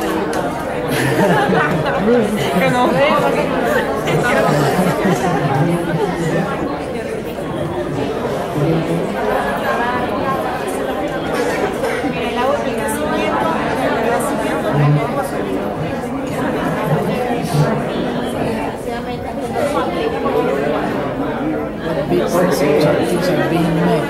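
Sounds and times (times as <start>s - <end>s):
babble of overlapping conversations: 0.0s - 24.0s.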